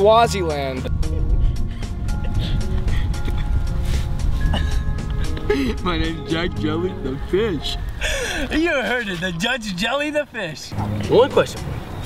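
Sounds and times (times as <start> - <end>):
music with sustained notes and bass: 0.0 - 8.9, 10.7 - 12.0.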